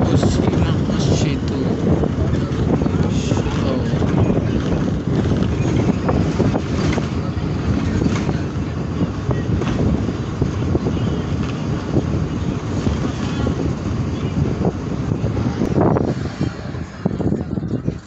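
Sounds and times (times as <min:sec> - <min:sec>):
bus engine and road rumble: 0:00.0 - 0:18.0
wind rushing through window: 0:00.0 - 0:18.0.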